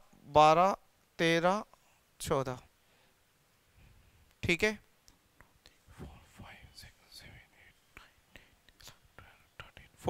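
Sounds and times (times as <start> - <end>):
man whispering: 5.6 - 10.0.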